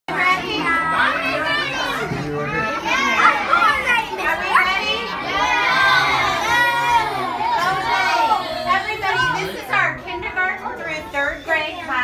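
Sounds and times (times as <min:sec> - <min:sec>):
children talking and calling out: 0:00.1 - 0:12.0.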